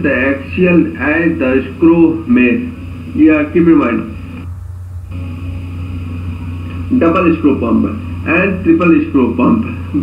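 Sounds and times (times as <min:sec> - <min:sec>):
faint hiss: 0:00.0 - 0:10.0
steady low hum: 0:00.0 - 0:10.0.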